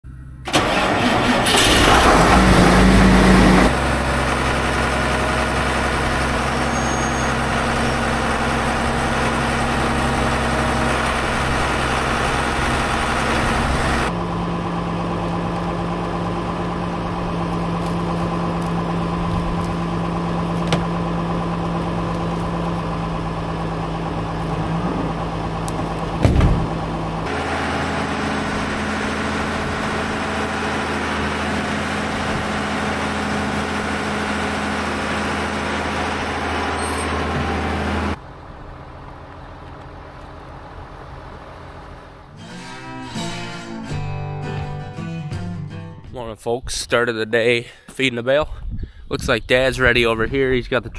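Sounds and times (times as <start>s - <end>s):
tractor diesel engine running: 0.0s - 46.6s
short thump: 26.2s - 26.7s.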